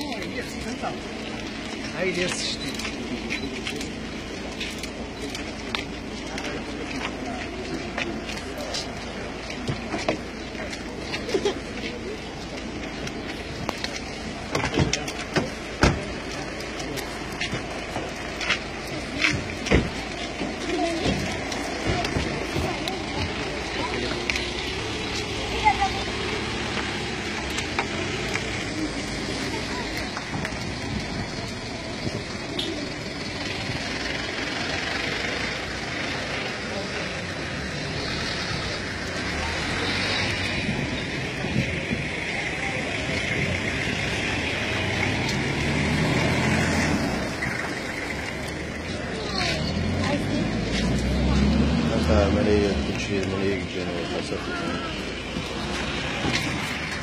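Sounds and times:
indistinct voices: 0.0s - 57.0s
traffic noise: 0.0s - 57.0s
vehicle engine rumble: 0.0s - 57.0s.

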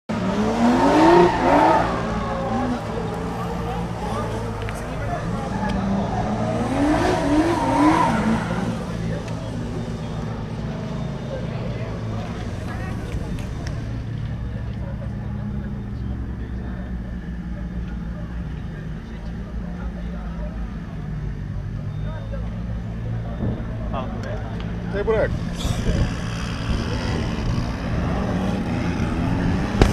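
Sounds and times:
voices: 0.1s - 29.9s
car engine idling: 1.3s - 25.2s.

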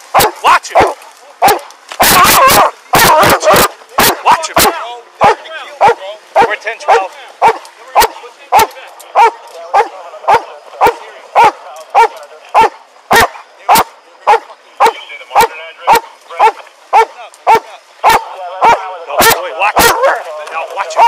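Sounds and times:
dog barking: 0.1s - 20.2s.

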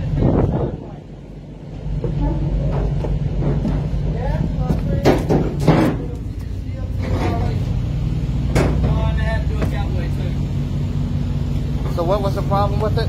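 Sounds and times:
truck diesel engine idling: 0.0s - 13.0s.

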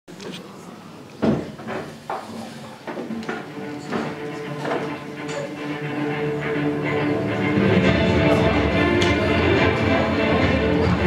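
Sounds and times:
murmur of audience voices: 0.1s - 11.0s.

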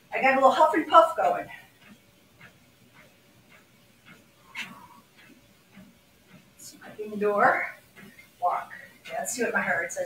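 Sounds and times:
footfalls on treadmill belt: 0.2s - 10.0s.

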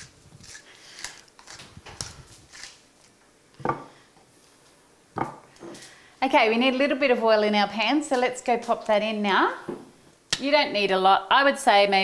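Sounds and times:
pepper mill grinding: 0.0s - 3.1s.

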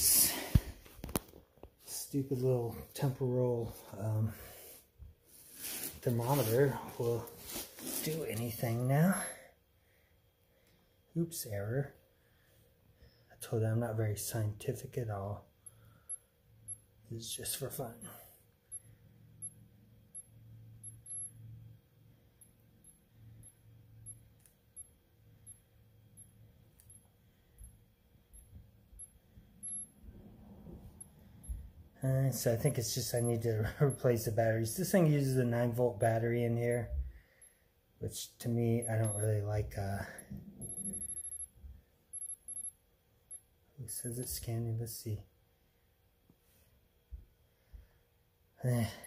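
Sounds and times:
faint low hum: 0.0s - 49.0s
high-pitched electronic tone pulses: 40.6s - 41.5s.

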